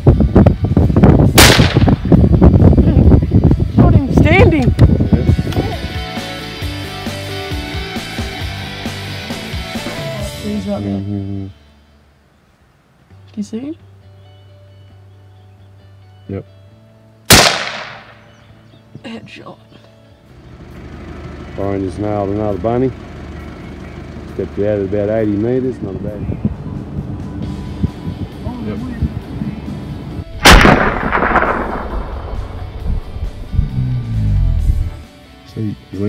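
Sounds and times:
rifle shot echoing: 1.4 - 2.1, 17.3 - 18.4, 30.4 - 33.3.

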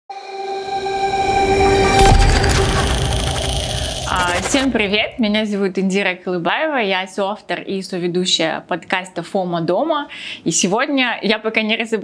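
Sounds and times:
horn-like chord: 0.1 - 4.4
musical hit: 0.1 - 5.4
low rumble: 0.2 - 5.5.

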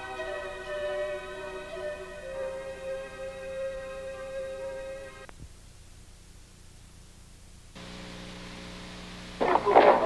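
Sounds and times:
low electrical hum: 0.0 - 10.0
tape hiss: 0.0 - 10.0.

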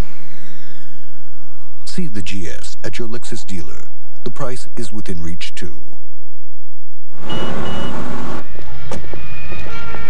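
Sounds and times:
city street traffic: 7.1 - 10.0
short high beeps: 7.2 - 8.0.

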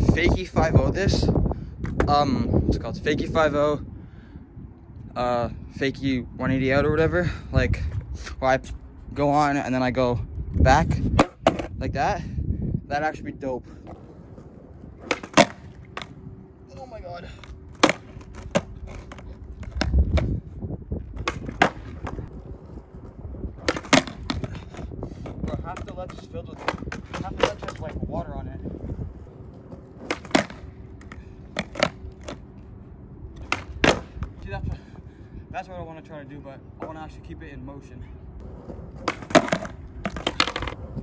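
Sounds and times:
skateboard clacking on concrete: 1.8 - 2.3, 11.2 - 11.7, 13.8 - 16.2, 17.2 - 20.4, 21.1 - 28.2, 29.0 - 32.5, 33.4 - 34.4, 38.4 - 41.0
skateboard wheels rolling: 6.1 - 11.8, 13.0 - 35.0, 38.4 - 41.0.

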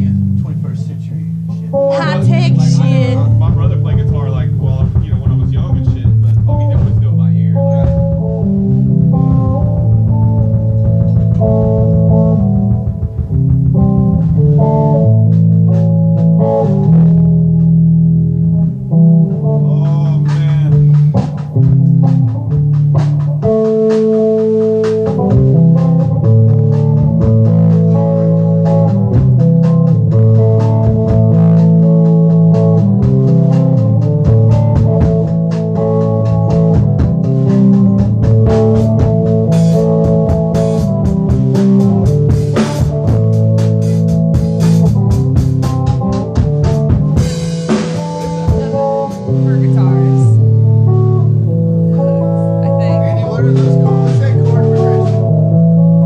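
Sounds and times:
amplified electric string instrument: 0.0 - 56.0.

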